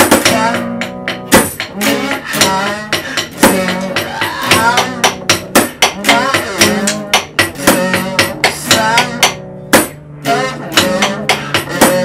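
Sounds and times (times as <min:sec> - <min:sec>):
person singing: 0:00.0 - 0:09.4, 0:10.2 - 0:12.0
drumsticks beating plastic bucket: 0:00.0 - 0:10.0, 0:10.7 - 0:12.0
strummed electric guitar: 0:00.0 - 0:12.0.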